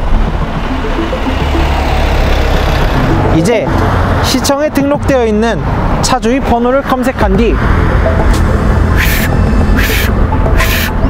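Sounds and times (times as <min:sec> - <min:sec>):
truck passing rumble: 0:00.0 - 0:11.0.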